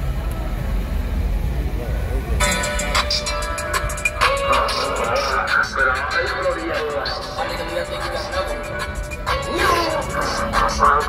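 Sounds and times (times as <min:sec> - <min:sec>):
faint voices: 0:00.0 - 0:11.0
traffic rumble: 0:00.0 - 0:11.0
loud music with steady beat: 0:02.4 - 0:11.0.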